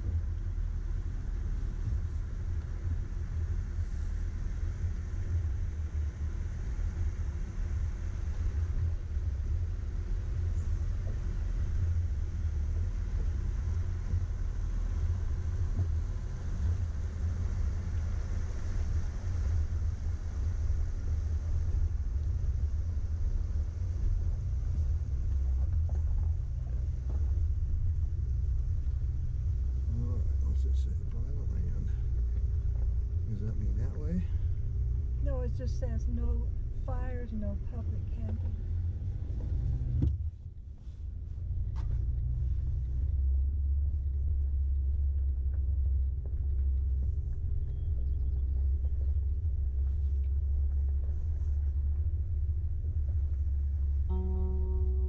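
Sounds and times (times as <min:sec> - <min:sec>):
vehicle engine rumble: 0:00.0 - 0:55.0.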